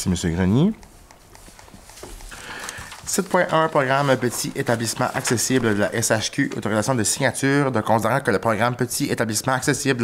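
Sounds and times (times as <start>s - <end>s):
faint clicks and knocks: 0.5s - 6.9s.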